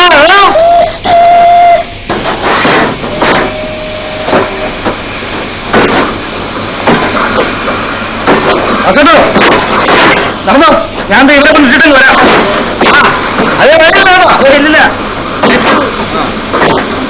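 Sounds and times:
steam locomotive whistle: 0.0 - 5.2
steam hissing: 0.0 - 17.0.

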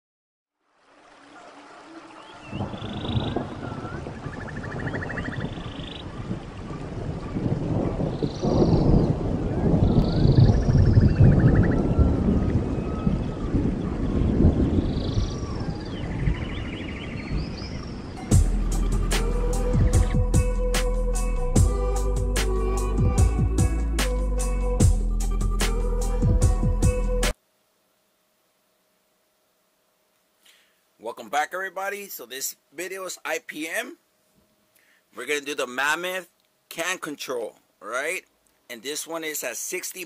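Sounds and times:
chirping and trilling animal calls: 1.0 - 7.5
thunder-like rumble: 2.6 - 5.6, 6.4 - 16.7
steady low tone: 18.2 - 27.2
music with sharp strikes: 18.3 - 27.4.

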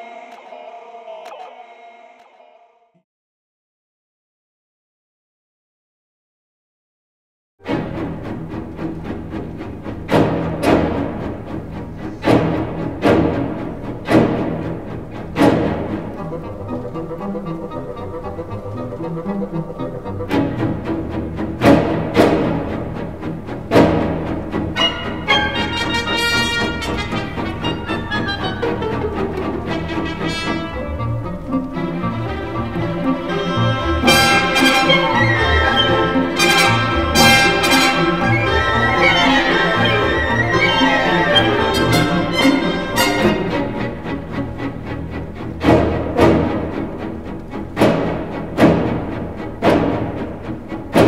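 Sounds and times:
held low orchestral notes: 7.6 - 51.0
orchestral quick repeated pulse: 32.6 - 43.9.

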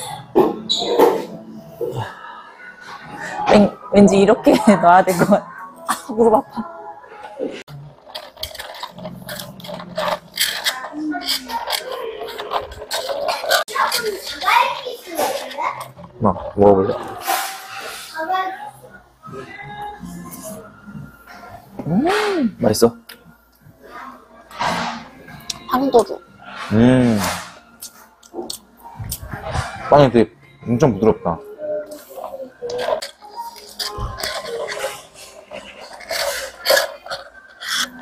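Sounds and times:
background music: 0.0 - 38.0
cafe room noise: 0.0 - 38.0.

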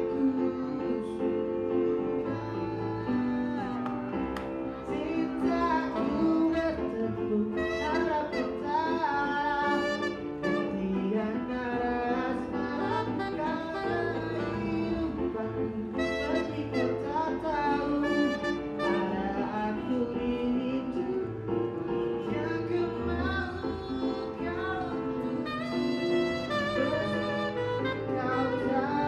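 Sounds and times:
alto saxophone melody: 0.0 - 20.0, 22.5 - 29.0
electric keyboard chords: 0.0 - 29.0.

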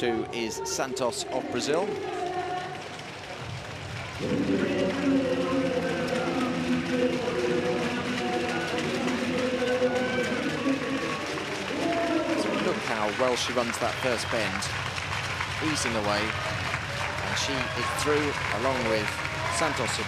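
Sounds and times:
stadium crowd murmur: 0.0 - 20.0
echoing public-address announcement: 4.2 - 14.6.

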